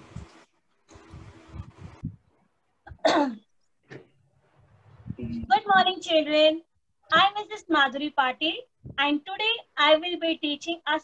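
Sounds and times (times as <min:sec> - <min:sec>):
woman clearing throat: 0:02.9 - 0:03.4.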